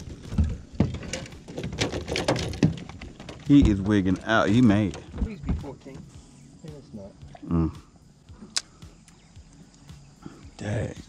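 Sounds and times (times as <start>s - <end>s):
knocks against boat: 0.0s - 6.1s.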